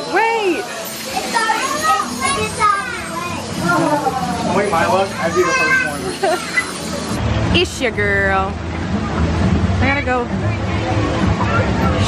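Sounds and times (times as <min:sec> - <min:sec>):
crowd talking and calling out: 0:00.0 - 0:12.0.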